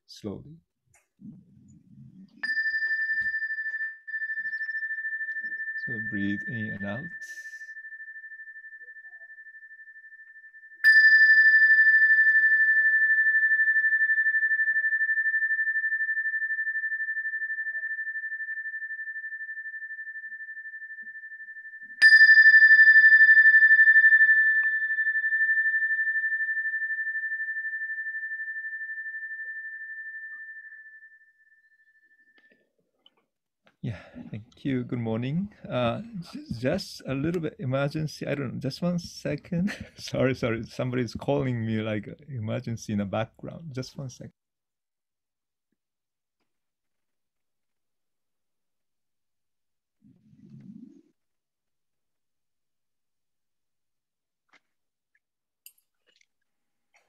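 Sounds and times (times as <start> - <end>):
bowl bell ringing: 1.8 - 32.4.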